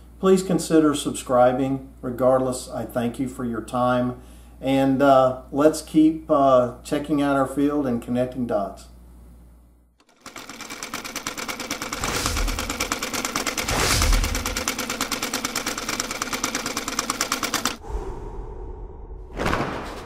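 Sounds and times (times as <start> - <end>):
rapid mechanical clicking: 10.0 - 17.8
low rumble: 17.8 - 20.0.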